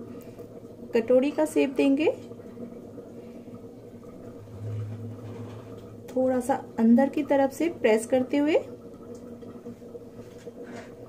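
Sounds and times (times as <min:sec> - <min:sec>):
deeper hum: 0:03.9 - 0:06.8.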